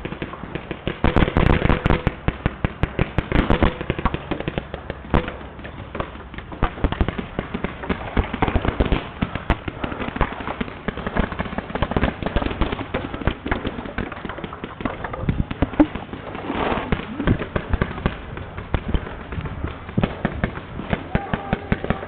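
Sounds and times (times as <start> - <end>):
paintball guns rapid popping: 0.0 - 22.0.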